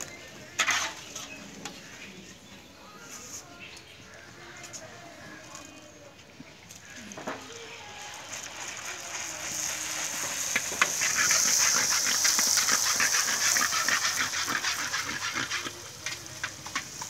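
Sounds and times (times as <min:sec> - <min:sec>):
shells deep-frying in oil: 0:00.0 - 0:02.1, 0:06.5 - 0:17.0.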